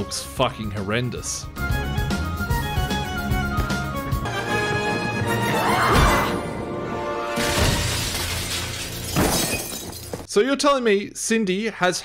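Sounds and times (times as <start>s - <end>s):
loud crash: 7.3s - 9.6s
window glass shattering: 7.3s - 10.3s.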